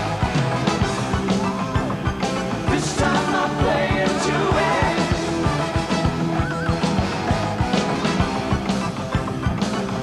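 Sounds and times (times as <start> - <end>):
drum kit beating: 0.0 - 10.0.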